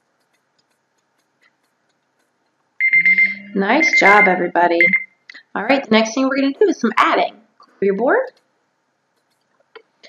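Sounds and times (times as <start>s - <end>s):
timer alarm high tone: 2.8s - 5.1s.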